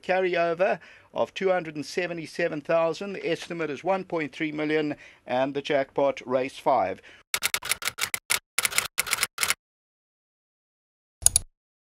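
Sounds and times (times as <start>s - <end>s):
rapid shutter-like clicks: 7.4s - 9.6s.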